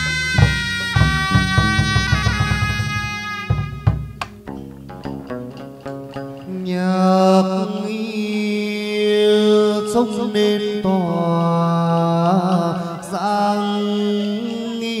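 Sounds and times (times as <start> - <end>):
plucked string accompaniment: 0.0 - 8.0
person singing long wavering notes: 6.4 - 15.0.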